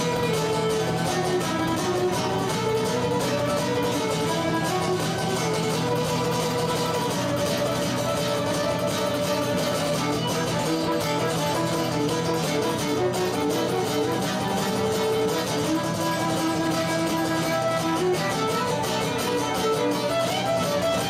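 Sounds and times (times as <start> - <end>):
bowed fiddle melody: 0.0 - 21.0
strummed acoustic guitar: 0.0 - 21.0.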